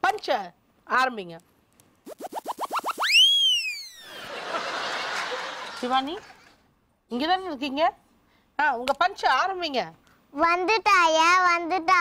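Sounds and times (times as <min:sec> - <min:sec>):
cartoon rising boings: 0:02.1 - 0:04.1
cartoon swoop sliding: 0:02.1 - 0:04.2.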